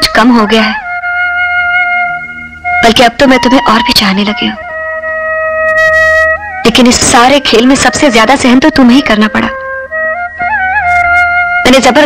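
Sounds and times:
held wind instrument note: 0.0s - 12.0s.

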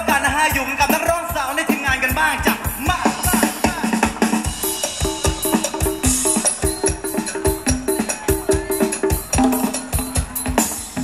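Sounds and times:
drum kit quick beat: 0.0s - 11.0s
live band music: 0.0s - 11.0s.

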